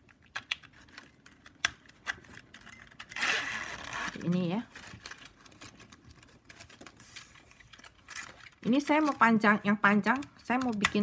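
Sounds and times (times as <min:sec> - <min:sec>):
plastic strapping band scraping: 0:02.2 - 0:09.4.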